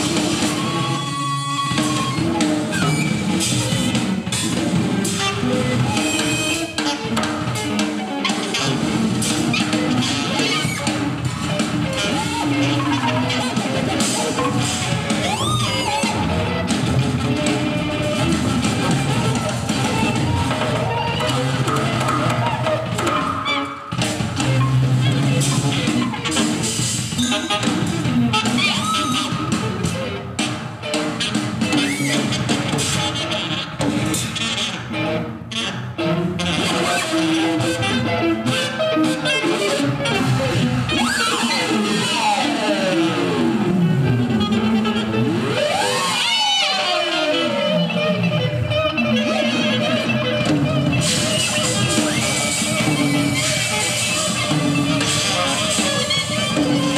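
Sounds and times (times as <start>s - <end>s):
drum kit: 0.0s - 56.9s
guitar: 0.0s - 56.9s
live band playing: 0.0s - 56.9s
high swooping note: 27.2s - 28.0s.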